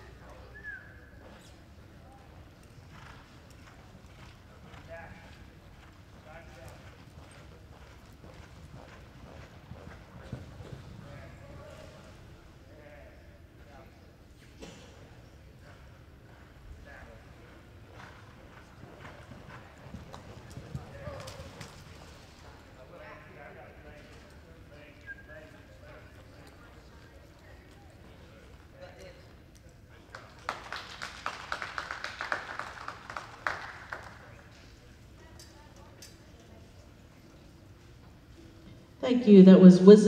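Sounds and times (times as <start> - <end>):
horse hoofbeats on soft dirt: 1.2 - 12.1, 15.7 - 22.6
small crowd clapping: 30.0 - 34.7.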